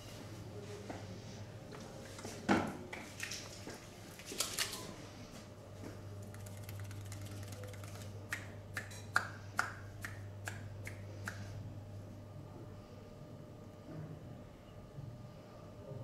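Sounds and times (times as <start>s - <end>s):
low steady hum: 2.8s - 16.0s
fingers clicking on head: 6.3s - 11.4s.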